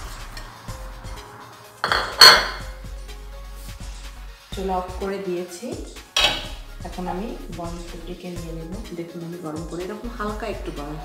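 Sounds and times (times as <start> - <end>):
kitchenware knock: 1.8 - 2.8, 6.2 - 6.6
plate and pan clinking: 1.8 - 2.8, 6.2 - 6.6.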